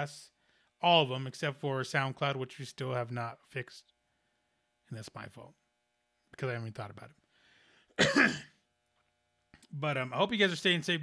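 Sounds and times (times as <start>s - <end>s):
man coughing: 8.0s - 8.6s.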